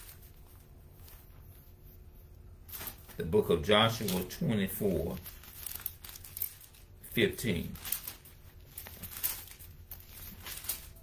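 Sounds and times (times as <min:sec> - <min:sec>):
thin pages rustling: 0:00.0 - 0:01.9, 0:02.6 - 0:11.0.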